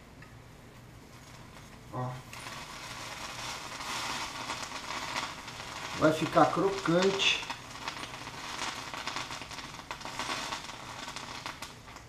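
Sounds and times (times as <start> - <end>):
bread sizzling in a sandwich press: 1.0 - 12.0.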